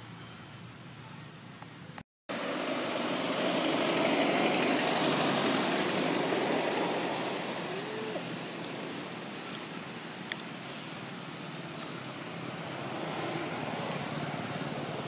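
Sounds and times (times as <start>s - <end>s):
vehicle passing: 2.3s - 9.4s, 10.7s - 15.0s.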